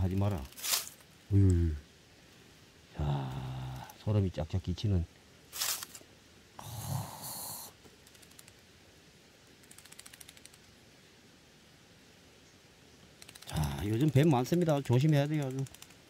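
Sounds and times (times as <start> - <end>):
faint ticking in dry leaves: 0.0 - 16.0
snake hissing: 5.5 - 8.5.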